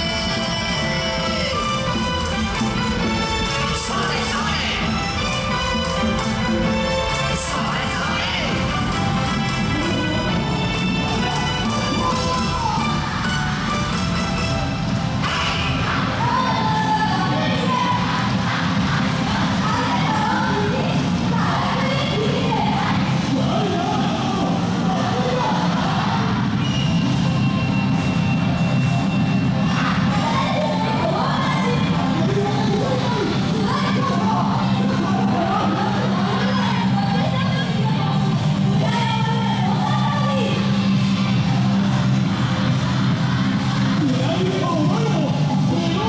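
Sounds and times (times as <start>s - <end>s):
dance music over loudspeakers: 0.0s - 46.0s
many voices shouting: 15.2s - 26.6s.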